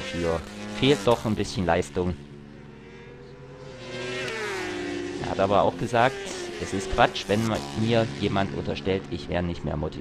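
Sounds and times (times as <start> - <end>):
racing motorcycle engines high revs: 0.0 - 10.0.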